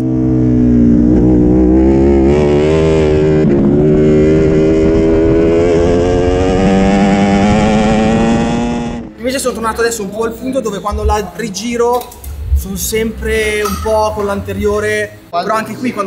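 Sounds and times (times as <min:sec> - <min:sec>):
motorcycle engine accelerating: 0:00.0 - 0:09.2.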